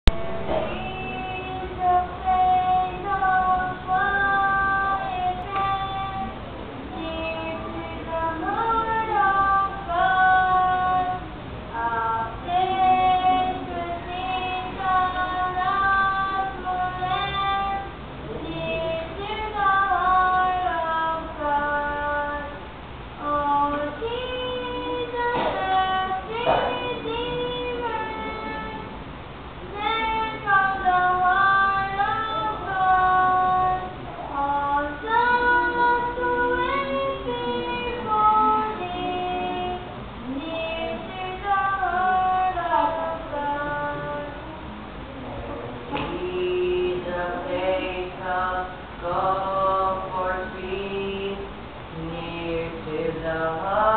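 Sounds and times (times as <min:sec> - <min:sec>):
children singing into a microphone: 0:00.1 - 0:29.0, 0:29.6 - 0:53.9.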